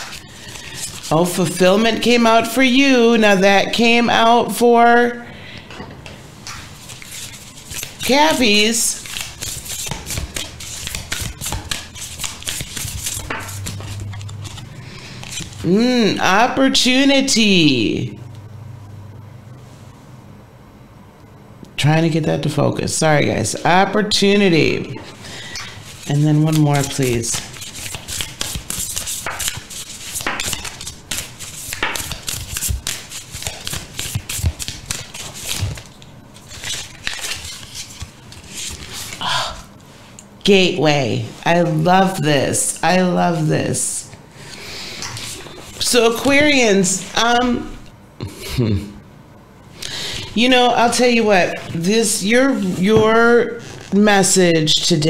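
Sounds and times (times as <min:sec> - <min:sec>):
cards shuffled by hand: 0:00.0 - 0:01.5, 0:06.5 - 0:15.8, 0:25.6 - 0:39.2.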